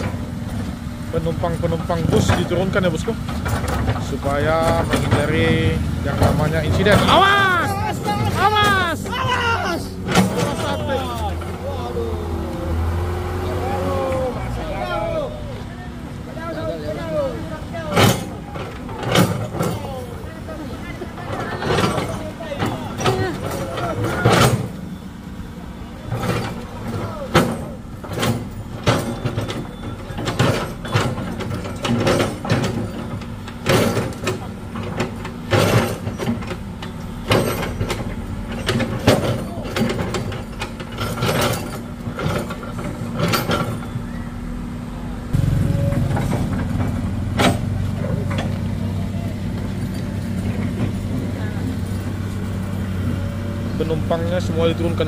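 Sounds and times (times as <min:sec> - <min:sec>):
excavator bucket knocking and scraping: 0:00.0 - 0:44.8, 0:45.4 - 0:55.0
excavator diesel engine running: 0:00.0 - 0:55.0
voices talking: 0:00.0 - 0:55.0.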